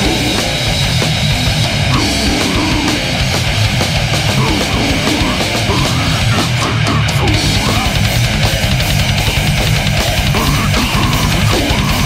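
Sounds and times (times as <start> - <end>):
distorted guitar riffing: 0.0 - 12.0
fast dense drumming: 0.0 - 12.0.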